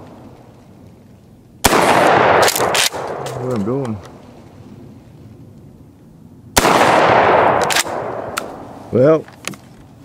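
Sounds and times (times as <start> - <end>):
shotgun shot echoing: 1.6 - 3.6, 6.6 - 8.7.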